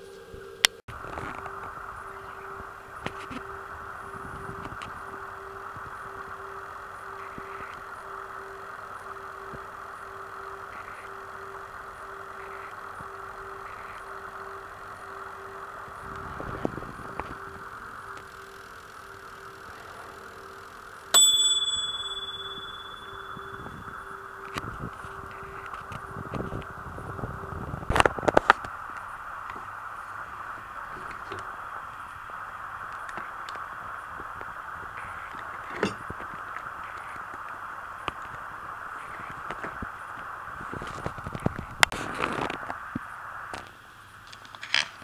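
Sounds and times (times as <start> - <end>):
steady hum: 0.0 - 44.2
bright timer ding: 21.2 - 26.2.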